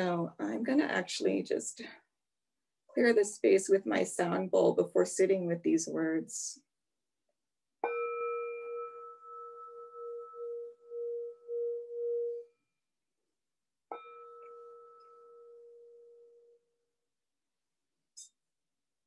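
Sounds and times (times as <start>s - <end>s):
singing bowl ringing: 7.8s - 12.5s, 13.9s - 16.6s.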